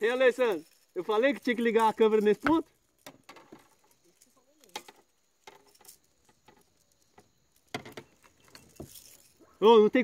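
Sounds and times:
fishing lure and line rattling: 0.0s - 10.0s.

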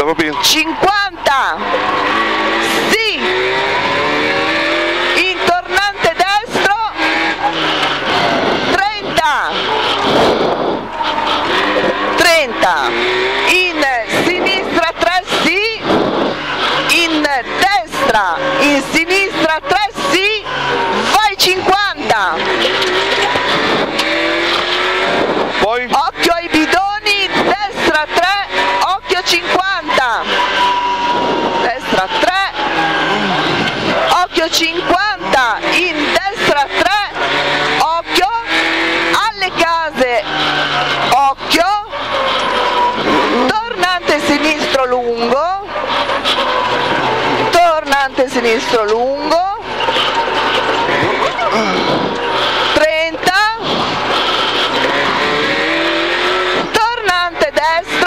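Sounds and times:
rally car engine from inside cabin: 0.0s - 58.0s.

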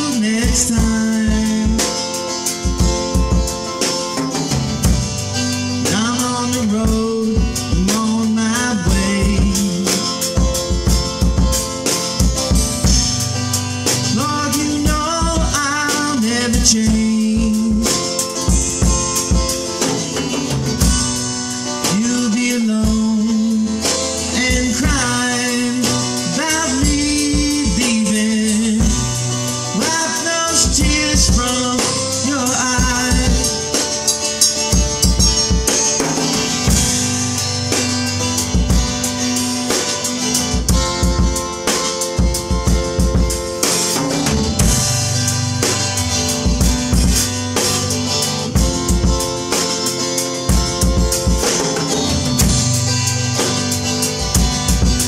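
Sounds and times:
drum kit beat: 0.0s - 55.0s
strummed acoustic guitar: 0.0s - 55.0s.

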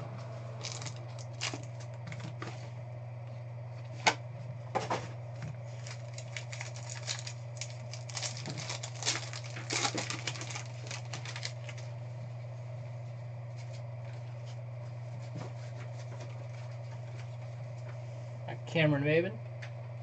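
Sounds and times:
low electrical hum: 0.0s - 20.0s
card pack crinkling: 0.6s - 2.4s, 5.6s - 11.9s.

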